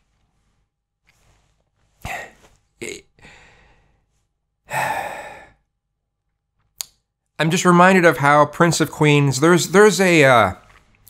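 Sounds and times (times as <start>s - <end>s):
man's breathy exhalations: 2.0s - 2.6s, 3.2s - 5.7s.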